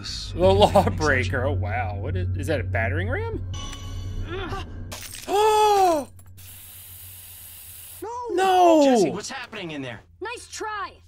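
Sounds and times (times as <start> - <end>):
spray-paint can hissing: 6.4 - 8.0.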